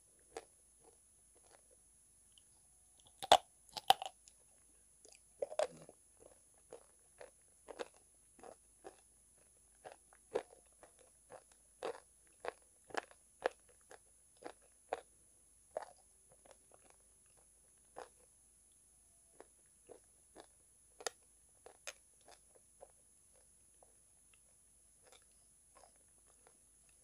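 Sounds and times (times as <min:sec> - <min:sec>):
crunchy chewing: 0:00.2 - 0:27.0
crunching bites of chalk: 0:03.0 - 0:04.1.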